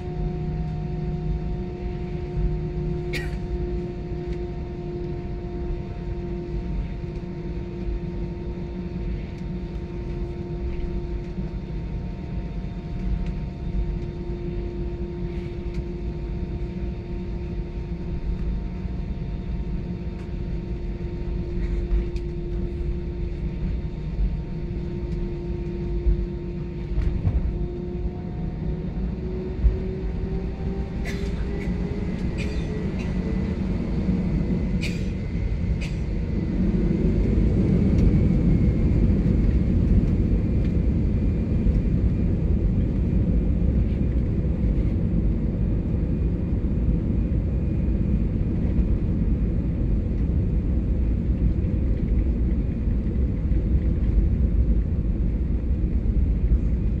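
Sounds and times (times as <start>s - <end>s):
jet engines humming: 0.0s - 57.0s.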